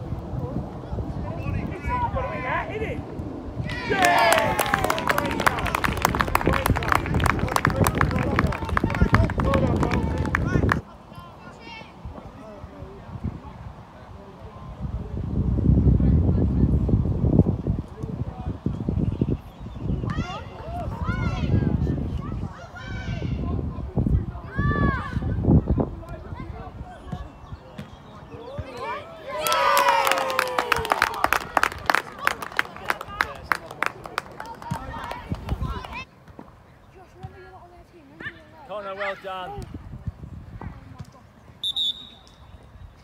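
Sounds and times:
spectators shouting: 0:03.6 - 0:06.0
faint shouts of players: 0:03.6 - 0:12.6, 0:26.1 - 0:33.6
sharp claps: 0:29.4 - 0:36.0.

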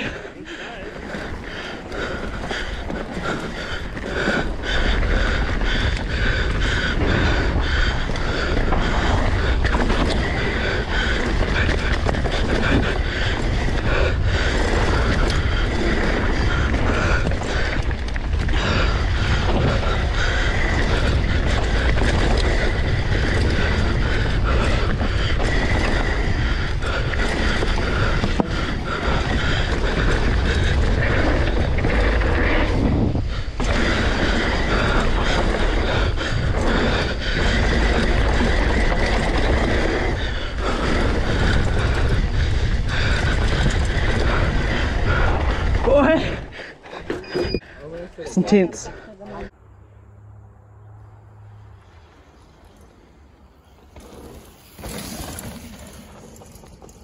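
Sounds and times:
wind rushing on microphone: 0:00.0 - 0:47.6
tyre roar on dirt: 0:00.0 - 0:48.0, 0:49.2 - 0:57.0
bike chain and frame rattling: 0:00.0 - 0:49.6, 0:51.8 - 0:57.0.

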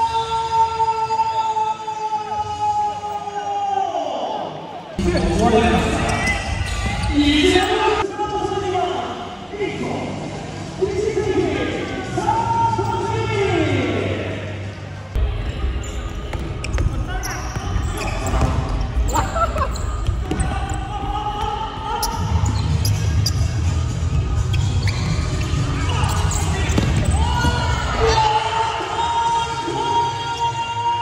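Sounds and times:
shoe squeaks: 0:05.0 - 0:07.8, 0:15.8 - 0:20.9, 0:21.9 - 0:23.8, 0:24.4 - 0:28.2
players shouting: 0:17.2 - 0:24.1, 0:24.8 - 0:31.0.

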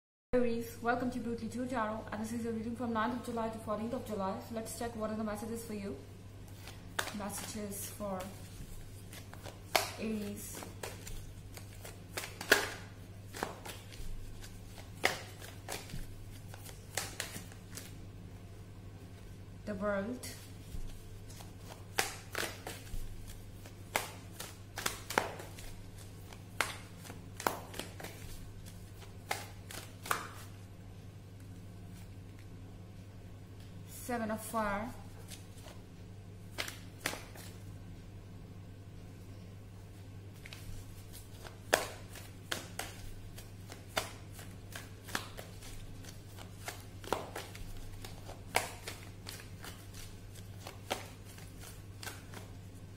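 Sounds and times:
low electrical hum: 0:00.4 - 0:52.9
cards being shuffled: 0:06.5 - 0:18.0, 0:20.3 - 0:30.7, 0:35.1 - 0:35.8, 0:36.4 - 0:37.7, 0:40.4 - 0:52.9.

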